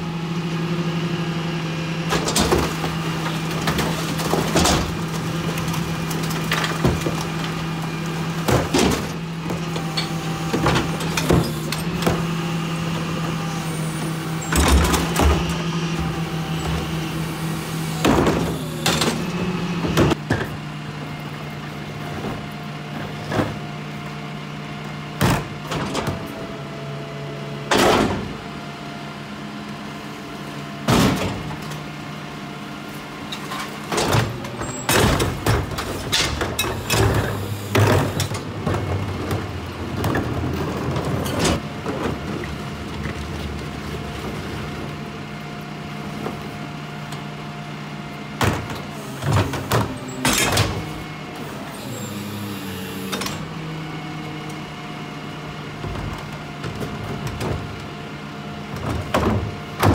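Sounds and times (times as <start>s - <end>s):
garbage truck engine humming: 0.0s - 59.9s
carts banging and clanking: 2.1s - 20.6s, 33.2s - 44.9s, 58.7s - 59.9s.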